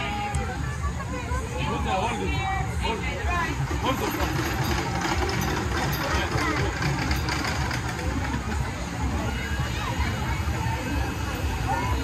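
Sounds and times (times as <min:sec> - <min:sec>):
children and bystanders' voices: 0:00.0 - 0:12.0
ride machinery rumble: 0:00.0 - 0:12.0.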